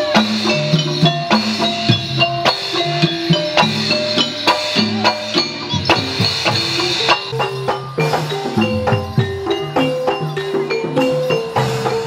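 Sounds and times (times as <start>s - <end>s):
drum strokes: 0.0s - 12.0s
jingling bells: 0.0s - 12.0s
struck metallophone notes: 0.0s - 12.0s.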